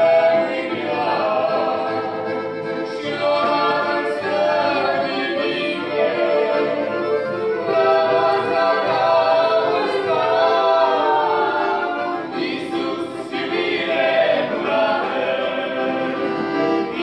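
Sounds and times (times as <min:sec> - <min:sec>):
group singing in harmony: 0:00.0 - 0:17.0.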